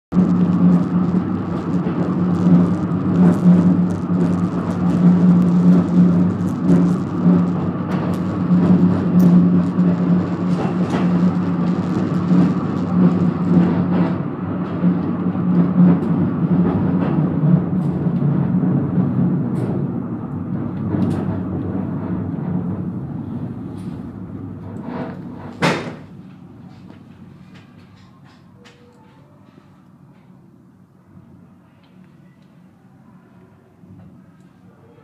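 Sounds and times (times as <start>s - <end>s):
funicular car running on rails: 0.1s - 30.6s.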